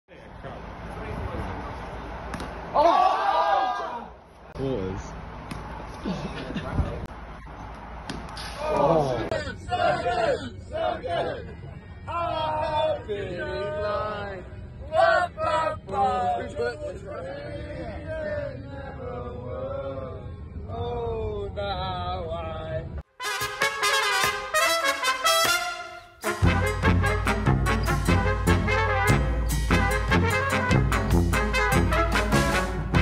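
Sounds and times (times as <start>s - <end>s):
young men shouting: 2.7s - 4.2s, 8.6s - 18.3s.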